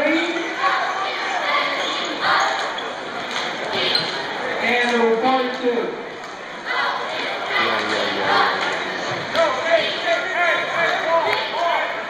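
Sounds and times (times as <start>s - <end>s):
echoing crowd chatter: 0.0s - 12.0s.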